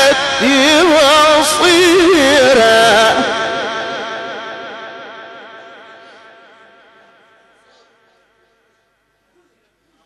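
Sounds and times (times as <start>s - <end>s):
amplified reciting voice: 0.0s - 8.2s.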